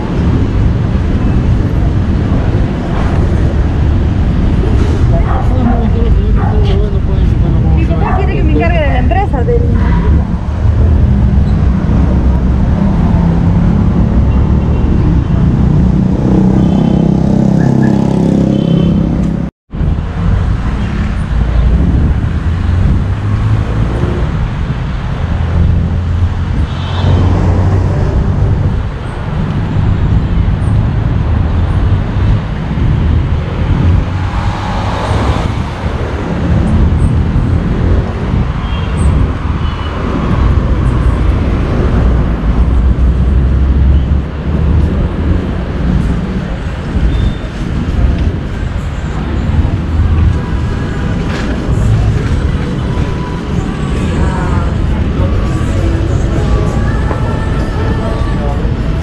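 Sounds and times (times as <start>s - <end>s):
street traffic: 0.0s - 59.0s.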